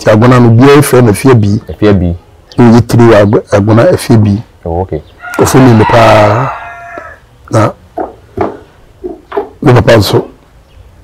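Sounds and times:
rooster crowing: 0:05.2 - 0:07.3.

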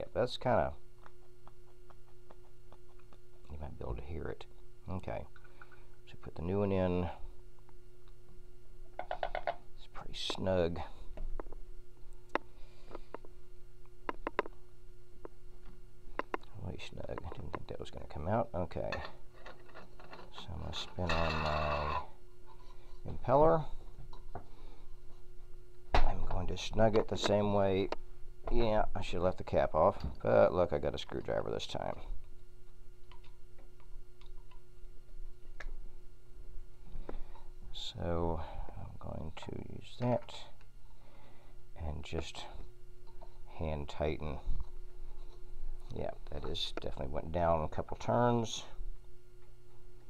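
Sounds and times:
faint steady hum: 0:00.0 - 0:50.0
small parts clicking and tapping: 0:14.1 - 0:14.6.

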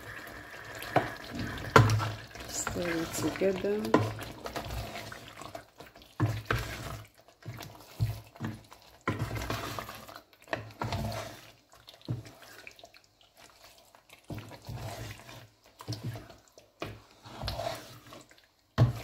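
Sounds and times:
spoon scraping metal pot: 0:00.0 - 0:05.6, 0:06.2 - 0:12.3, 0:14.3 - 0:19.0
spoon stirring thick stew: 0:00.0 - 0:19.0.

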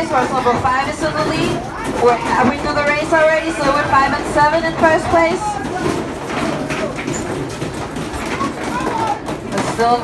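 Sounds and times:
arcade game clattering: 0:00.0 - 0:10.0
voices: 0:00.0 - 0:10.0.

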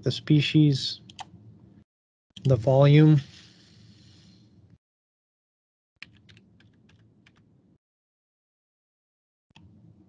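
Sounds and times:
faint typing on keyboard: 0:06.0 - 0:07.5.

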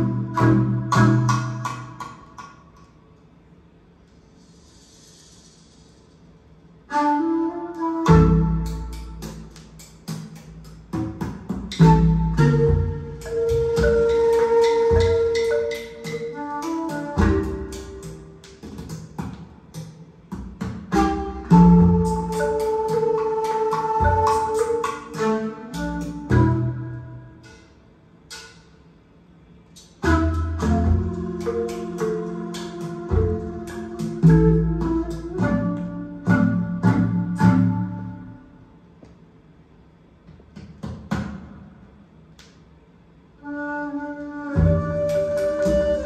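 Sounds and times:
regular percussion: 0:00.0 - 0:46.0
deep bass: 0:10.8 - 0:14.2.

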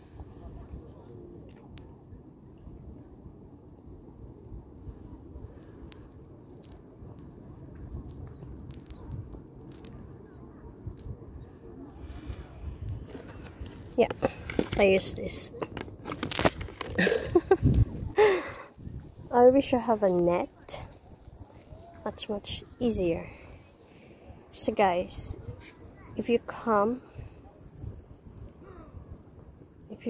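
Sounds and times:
wind rumbling on microphone: 0:00.0 - 0:30.0.

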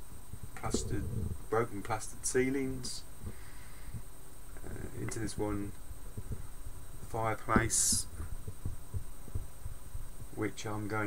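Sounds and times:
faint high whine: 0:00.0 - 0:11.0.

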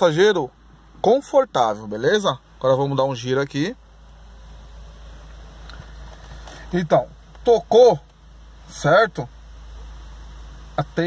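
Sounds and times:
car cabin rumble and hiss: 0:00.0 - 0:11.0.

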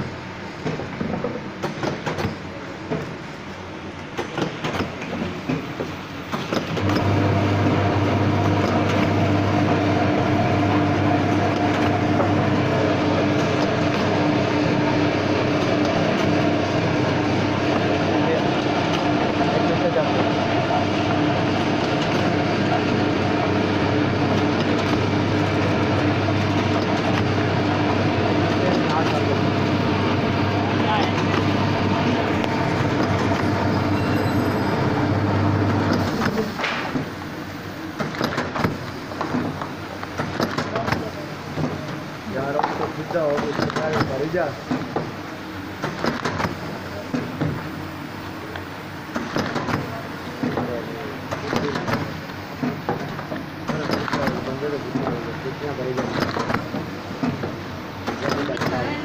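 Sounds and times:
packing machine humming: 0:00.0 - 0:59.0.

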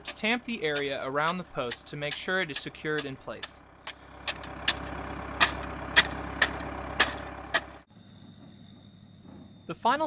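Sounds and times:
hand tool tamping gravel: 0:00.0 - 0:07.9
loader engine idling: 0:00.0 - 0:10.0.

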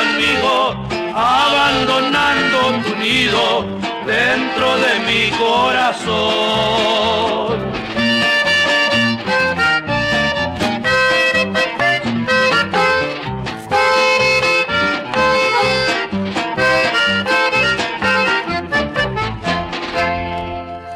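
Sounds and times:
bass: 0:00.0 - 0:20.9
button accordion melody: 0:00.0 - 0:20.9
guitar: 0:00.0 - 0:20.9.

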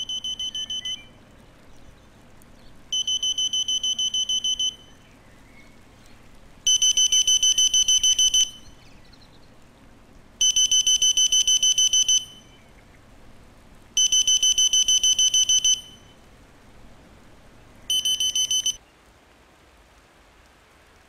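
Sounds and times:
alarm clock beeping: 0:00.0 - 0:01.0, 0:03.0 - 0:04.8, 0:06.7 - 0:08.6, 0:10.4 - 0:12.4, 0:14.0 - 0:16.0, 0:17.9 - 0:18.8.

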